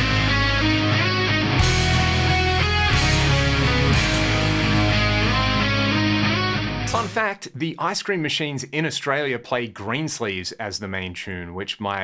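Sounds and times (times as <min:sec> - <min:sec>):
heavy rock song: 0:00.0 - 0:07.2.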